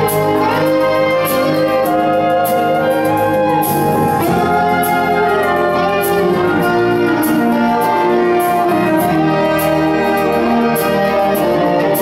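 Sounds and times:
concert wind band playing: 0.0 - 12.0
sharp percussion strikes: 0.0 - 12.0.

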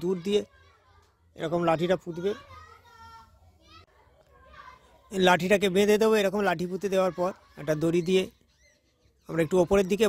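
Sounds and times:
faint children's voices: 0.0 - 10.0.

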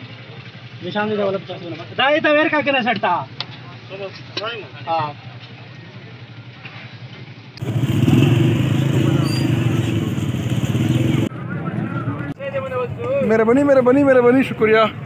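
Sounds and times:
open-air market background noise: 0.0 - 15.0
loud engine running: 7.2 - 11.3.

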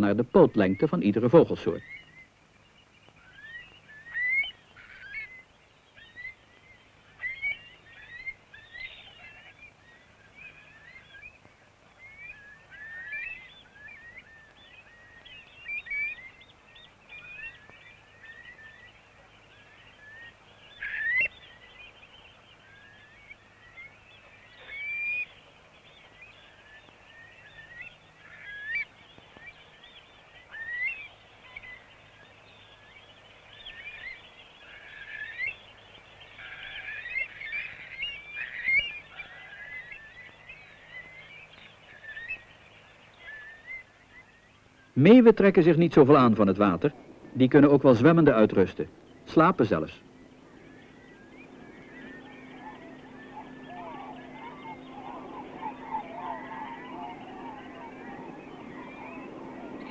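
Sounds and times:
shorebirds chirping: 0.0 - 59.9.

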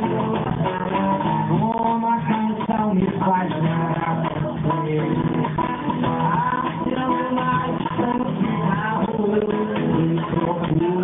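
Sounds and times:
acoustic guitar: 0.0 - 11.0
cajon: 0.0 - 11.0
man singing: 0.0 - 11.0.

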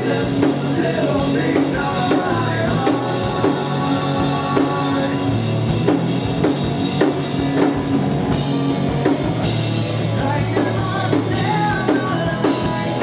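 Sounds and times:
bass guitar: 0.0 - 13.0
drum kit: 0.0 - 13.0
electric guitars: 0.0 - 13.0.

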